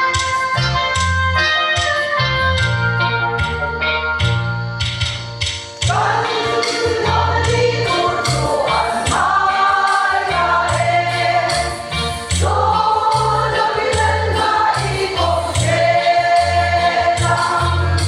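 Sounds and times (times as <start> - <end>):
keyboard accompaniment: 0.0 - 18.0
women's choir singing a hymn: 5.9 - 18.0.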